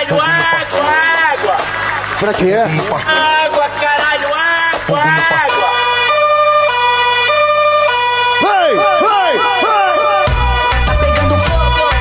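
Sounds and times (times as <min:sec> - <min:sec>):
two-tone siren effect: 0:04.2 - 0:10.9.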